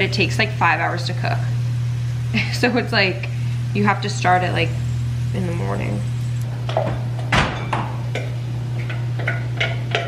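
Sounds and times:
steady low hum: 0:00.0 - 0:10.0
spoon knocking on bowl and pot: 0:07.4 - 0:10.0.

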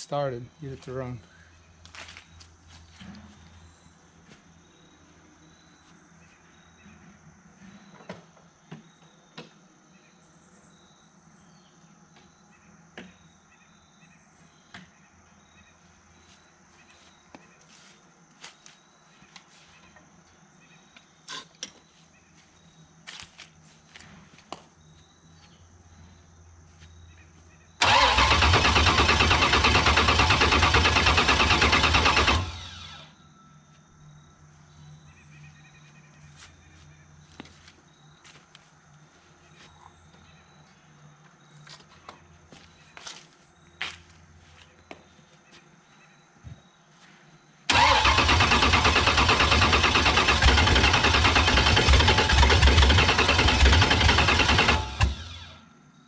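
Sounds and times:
footsteps: 0:01.8 - 0:03.6, 0:16.2 - 0:19.8, 0:21.8 - 0:24.8, 0:35.9 - 0:40.0, 0:41.6 - 0:45.7
engine starter cranking: 0:27.8 - 0:33.1, 0:47.7 - 0:55.6.

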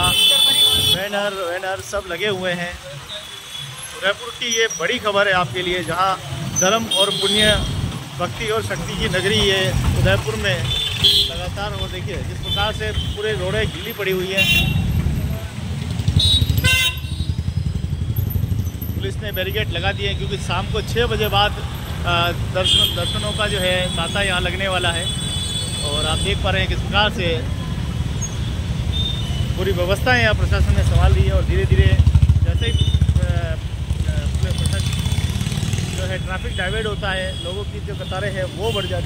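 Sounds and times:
vehicle horn toots: 0:00.0 - 0:01.0, 0:16.2 - 0:17.3
city street traffic: 0:00.0 - 0:39.0
motorcycle engines rumbling: 0:00.0 - 0:39.0.

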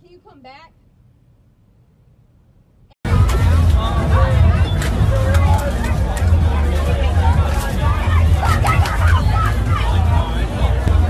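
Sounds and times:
loud low rumble: 0:03.1 - 0:11.0
people talking and calling out: 0:03.1 - 0:11.0.

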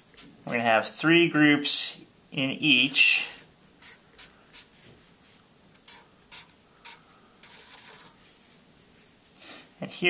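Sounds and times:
marker scratching on paper: 0:03.3 - 0:04.9, 0:05.8 - 0:08.2.

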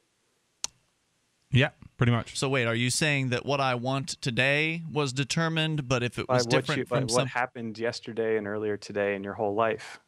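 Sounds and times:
man saying yeah: 0:01.6 - 0:10.0.

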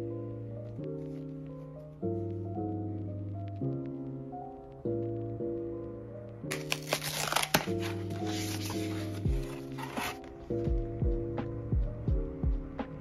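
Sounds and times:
cardboard box tearing: 0:06.5 - 0:10.2
background music with beat: 0:08.0 - 0:13.0.

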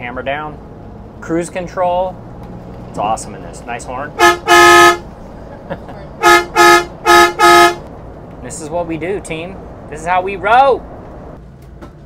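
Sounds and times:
vehicle horn honking: 0:04.2 - 0:05.1, 0:06.2 - 0:07.8.

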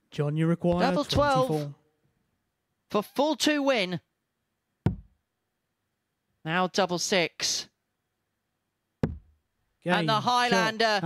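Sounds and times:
dart striking dartboard: 0:04.9 - 0:05.2, 0:09.0 - 0:09.4.

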